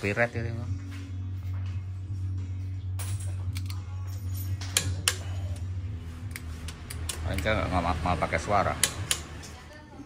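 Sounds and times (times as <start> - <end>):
metal tool clicking and tapping: 3.5 - 3.9, 4.6 - 5.6, 6.3 - 7.5, 8.8 - 9.6.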